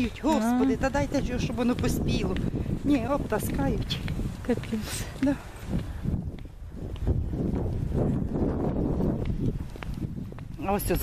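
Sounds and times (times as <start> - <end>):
faint footsteps: 0.0 - 11.0
wind rumble on microphone: 0.0 - 11.0.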